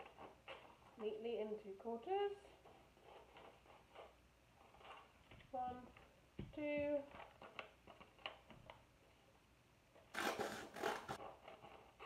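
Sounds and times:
scissors cutting paper: 10.1 - 12.0.

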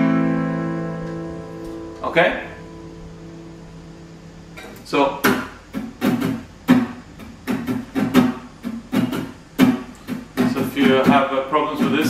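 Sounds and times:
acoustic guitar chord ringing: 0.0 - 12.0
person speaking: 2.0 - 2.7, 10.4 - 12.0.

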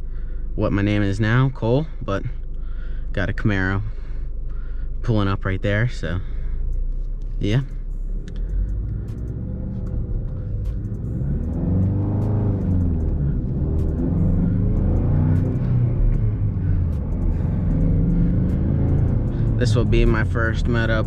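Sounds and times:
car engine accelerating through gears: 6.3 - 21.0.

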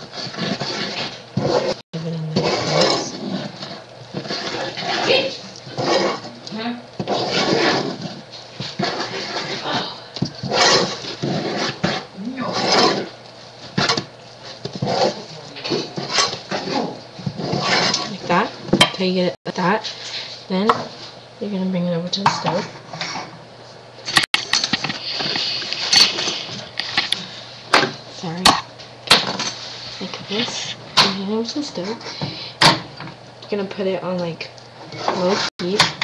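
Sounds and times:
wooden spoon stirring dough: 0.0 - 21.2, 33.5 - 35.9.

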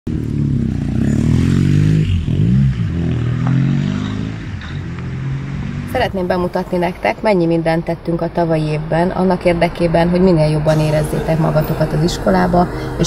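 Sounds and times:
car engine revving: 0.1 - 13.0.

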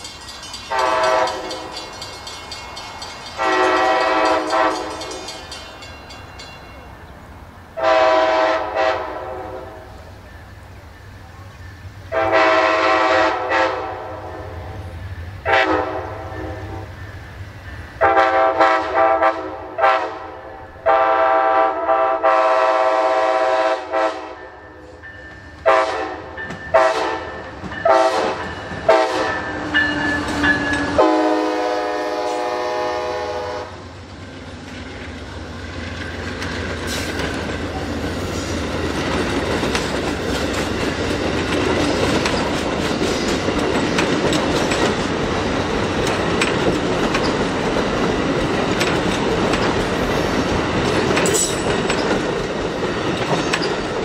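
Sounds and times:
train air horn blasts: 0.7 - 1.8, 3.4 - 5.3, 7.8 - 10.1, 12.1 - 17.0, 18.0 - 25.0, 25.6 - 33.9.

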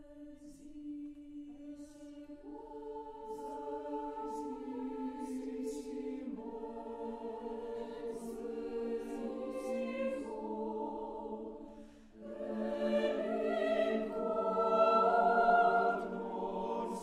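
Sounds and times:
choir singing sustained chords: 0.0 - 17.0.

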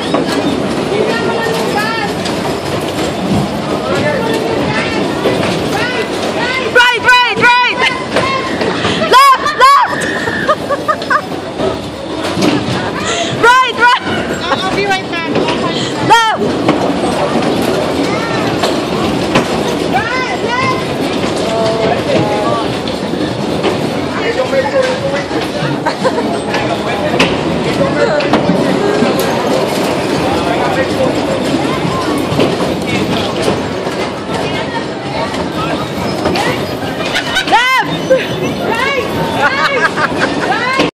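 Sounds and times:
bumper cars running: 0.0 - 40.9
voices: 0.0 - 40.9.

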